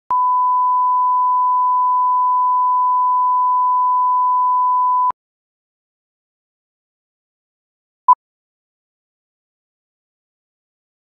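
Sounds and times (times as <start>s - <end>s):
steady test tone beep: 0.1s - 5.1s.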